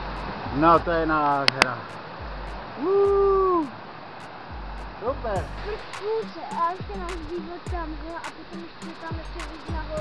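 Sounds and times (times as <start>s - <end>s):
stream rushing over rocks: 0.0s - 10.0s
person saying ooh: 2.8s - 3.8s.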